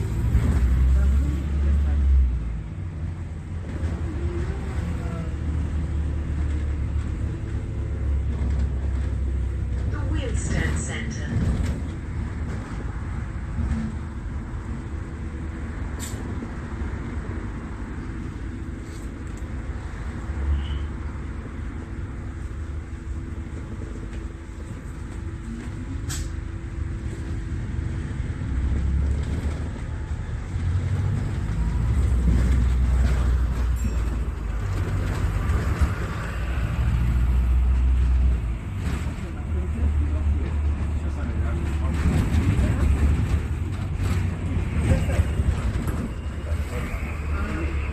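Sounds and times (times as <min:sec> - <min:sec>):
engine and road rumble: 0:00.0 - 0:47.9.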